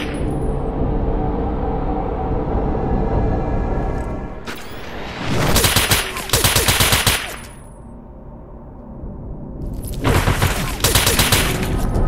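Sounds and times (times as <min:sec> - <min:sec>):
rapid automatic gunfire: 0:05.6 - 0:07.6, 0:10.1 - 0:11.9.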